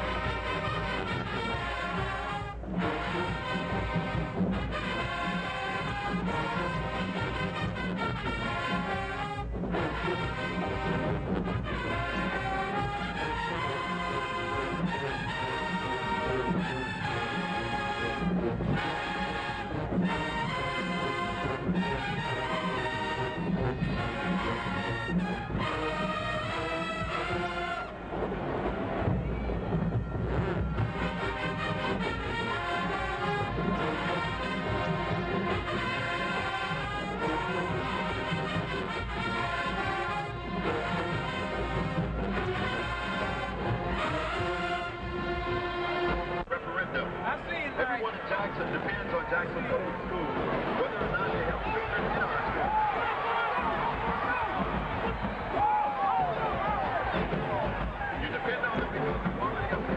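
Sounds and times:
marching band playing: 0.0s - 47.4s, 48.1s - 59.9s.

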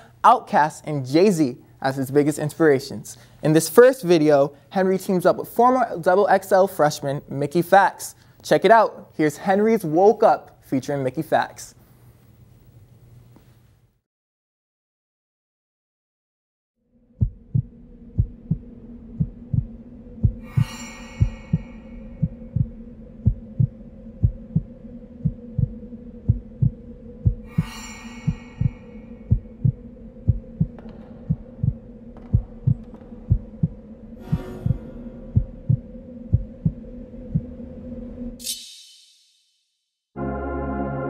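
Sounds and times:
low hum: 16.8s - 38.6s
heartbeat thumping: 17.2s - 37.6s
bright ringing swell: 18.7s - 24.1s, 26.8s - 30.2s.

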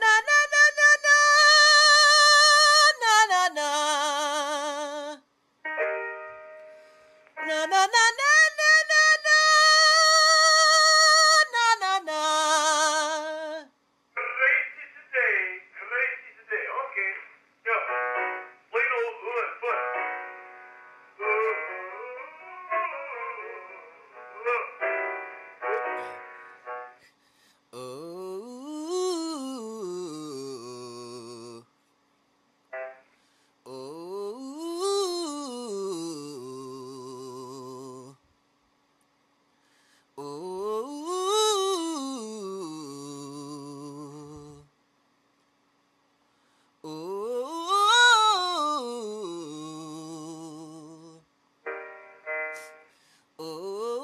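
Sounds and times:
man singing vocal exercise: 0.0s - 5.2s, 7.4s - 13.7s, 27.8s - 31.7s, 33.7s - 38.2s, 40.2s - 44.7s, 46.8s - 51.2s, 53.4s - 54.0s.

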